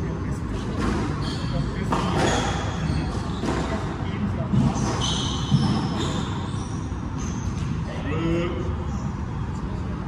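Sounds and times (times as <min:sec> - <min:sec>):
sneakers squeaking on wooden floor: 0:00.8 - 0:07.9.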